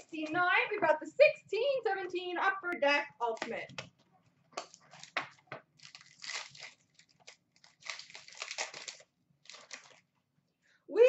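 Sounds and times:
plastic wrapping crinkling and tearing: 4.6 - 10.2.

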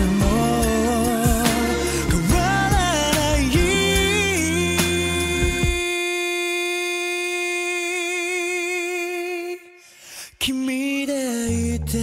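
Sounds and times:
backing music: 0.0 - 6.0.

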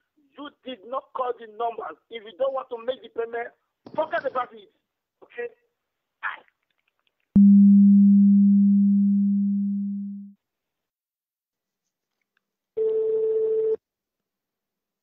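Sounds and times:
higher telephone tone: 7.4 - 10.3, 12.8 - 13.8
low telephone tone: 7.4 - 10.4, 12.8 - 13.8.

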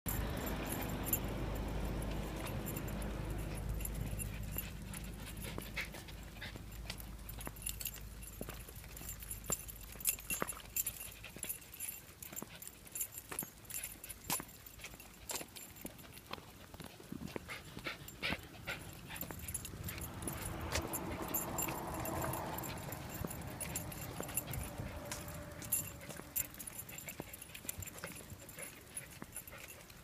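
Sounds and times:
small dogs whimpering: 1.9 - 7.4.

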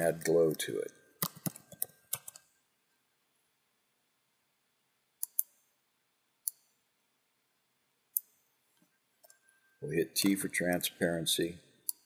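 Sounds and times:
keyboard keystrokes: 1.2 - 2.4
mouse clicks: 1.2 - 2.5, 5.2 - 5.7, 6.4 - 6.7, 8.1 - 8.4.

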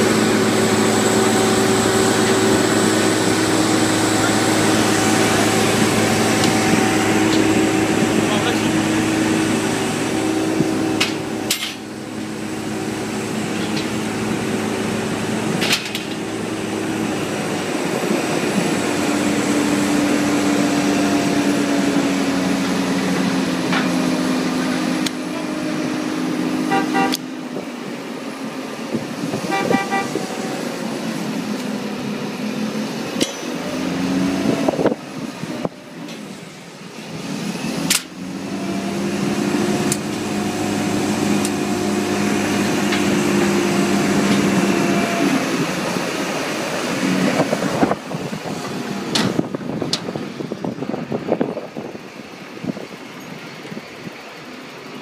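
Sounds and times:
crane engine and hydraulics drone: 0.0 - 55.0.

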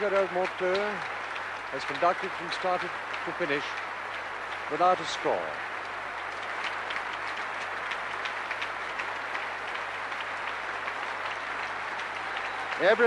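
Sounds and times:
large audience applauding: 0.0 - 13.0.

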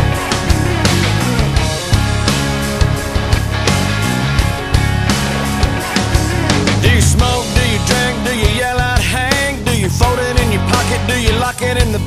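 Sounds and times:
country-rock band playing: 0.0 - 12.0.

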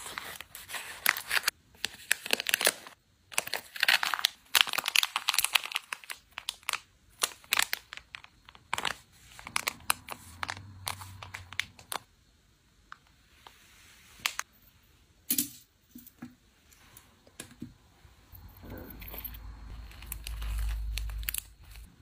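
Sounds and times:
foil pouch crinkling: 0.0 - 12.0, 19.7 - 21.9.

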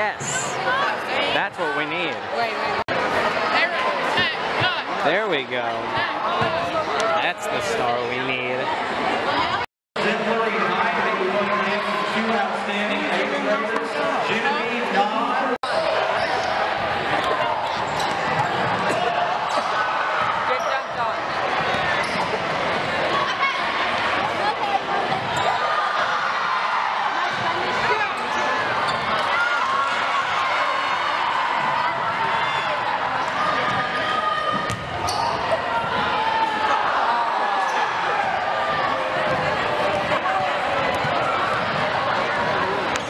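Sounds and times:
chatter of many voices: 0.0 - 43.0
basketball bouncing on hardwood: 34.6 - 35.0.

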